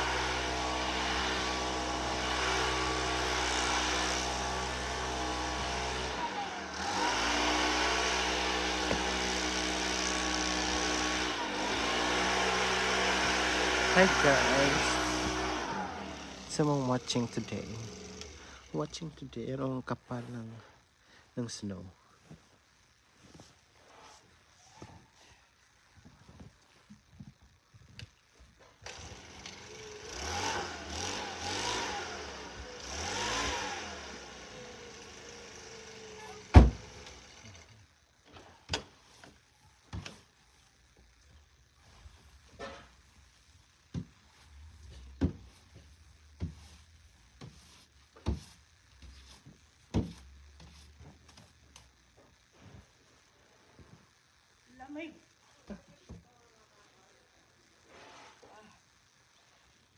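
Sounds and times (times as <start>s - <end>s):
engine running: 0.0s - 18.8s, 28.8s - 37.8s
knocks clearing snow off car: 7.7s - 9.6s.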